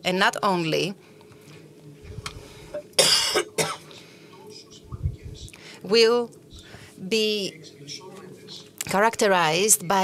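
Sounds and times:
person coughing: 0:03.0 - 0:03.9.

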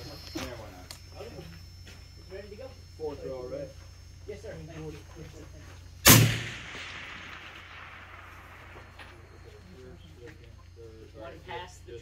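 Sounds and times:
steady low hum: 0:00.0 - 0:12.0
rifle shot echo: 0:06.0 - 0:09.7.

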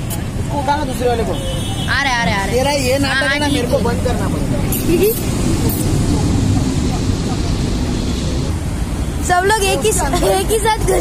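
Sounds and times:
low outdoor rumble: 0:02.2 - 0:11.0.

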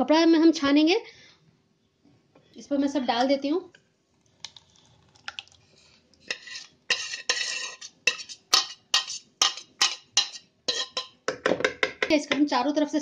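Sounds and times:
metal spoon scraping a pot: 0:06.2 - 0:11.2.

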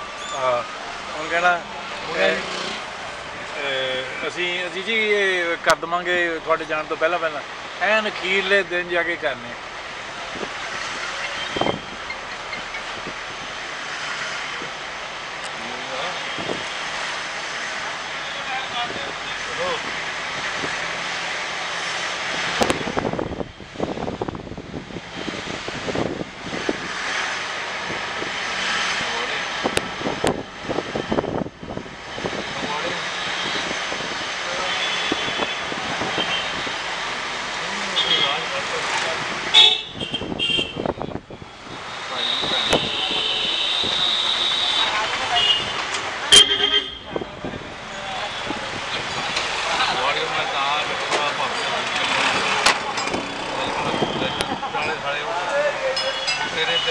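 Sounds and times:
scooters and cars passing: 0:00.0 - 0:04.9, 0:10.2 - 0:56.9
vehicle horns tooting: 0:11.2 - 0:12.3, 0:34.5 - 0:36.8, 0:39.5 - 0:41.2, 0:42.1 - 0:47.2, 0:53.3 - 0:55.0, 0:55.9 - 0:56.9.

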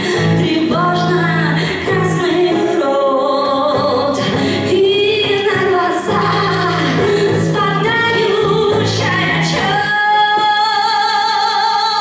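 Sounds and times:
electric guitar: 0:00.0 - 0:12.0
woman singing: 0:00.0 - 0:12.0.

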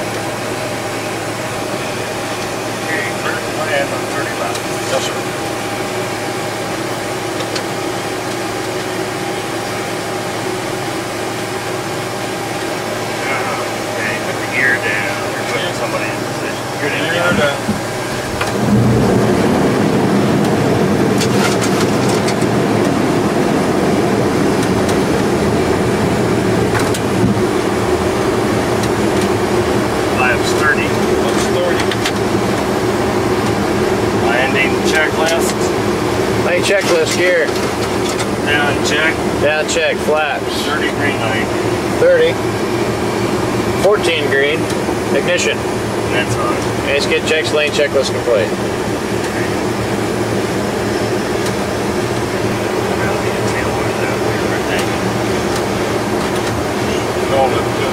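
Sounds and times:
cockpit airflow and engine hum: 0:00.0 - 0:57.9
deep rumble: 0:13.2 - 0:47.2.

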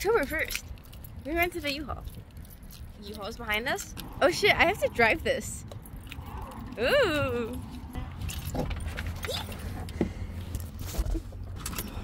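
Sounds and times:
light clicks and rattles of handling: 0:00.0 - 0:04.2.

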